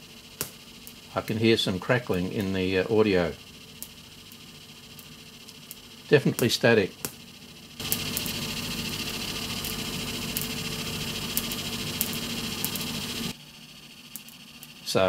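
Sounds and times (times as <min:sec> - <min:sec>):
static crackle with hiss and ticks: 0:00.0 - 0:13.4.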